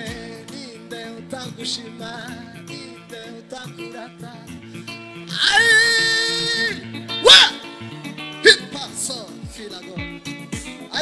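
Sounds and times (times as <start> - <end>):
held keyboard chords: 0.0 - 11.0.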